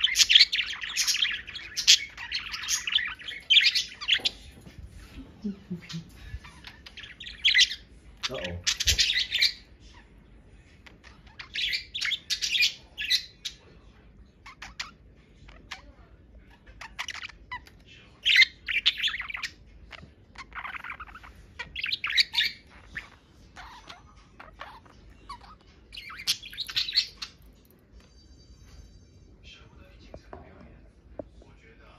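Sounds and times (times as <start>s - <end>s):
budgerigars chattering: 0.0s - 4.5s, 5.8s - 10.0s, 11.0s - 13.6s, 16.7s - 27.5s.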